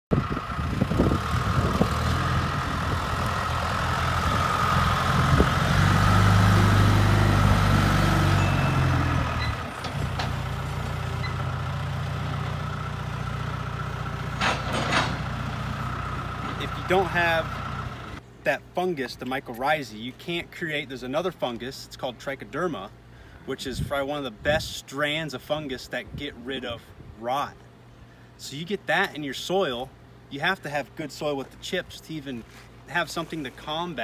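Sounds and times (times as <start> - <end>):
diesel engine running: 0.1 - 18.3
faint engine whine: 0.1 - 24.7, 25.3 - 34.0.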